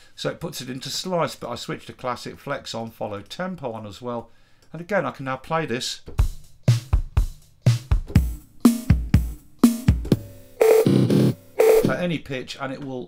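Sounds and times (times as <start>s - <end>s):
sampled drum loop: 6.1s - 12.2s.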